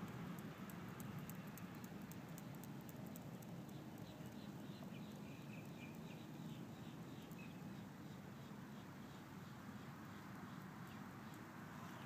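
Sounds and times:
faint high ticking: 0.0s - 6.3s.

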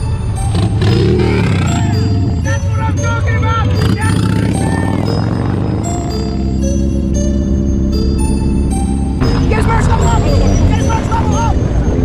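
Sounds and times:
motorcycle engines rumbling: 0.0s - 12.0s
person talking: 9.2s - 11.6s.

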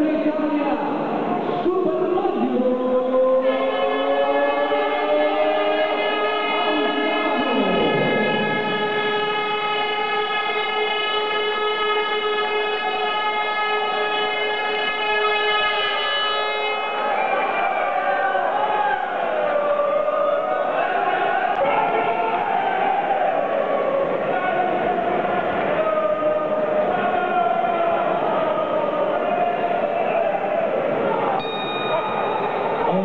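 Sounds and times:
crowd voices: 0.0s - 33.0s
horn-like tone: 3.4s - 18.0s, 31.4s - 33.0s.

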